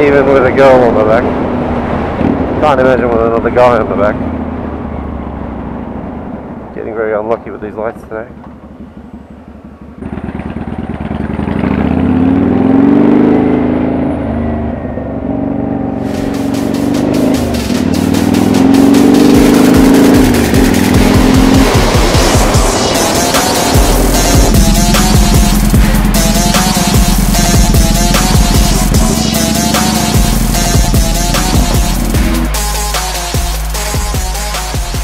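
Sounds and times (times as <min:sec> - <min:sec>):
motorcycle engine accelerating: 0:08.3 - 0:35.0
background music with steady beat: 0:16.1 - 0:35.0.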